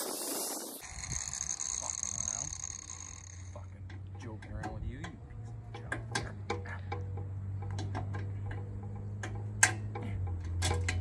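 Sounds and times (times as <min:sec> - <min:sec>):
hand tool clicking on metal: 0:02.2 - 0:11.0.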